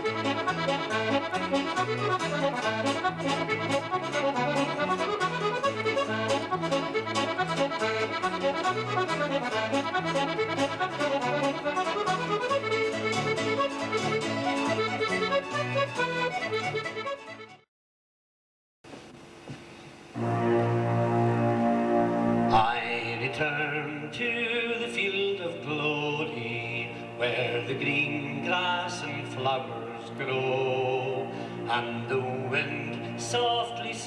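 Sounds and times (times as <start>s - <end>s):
accordion playing reels: 0.0s - 17.7s, 20.2s - 23.0s.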